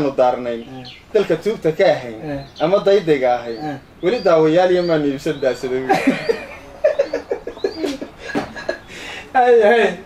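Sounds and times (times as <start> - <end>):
men laughing: 5.6 - 10.0.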